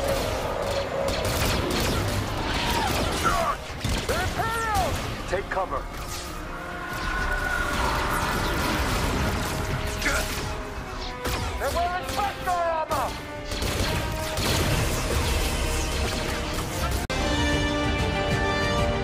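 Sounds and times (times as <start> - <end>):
blaster shots: 0.0 - 17.1
orchestral score: 0.0 - 19.0.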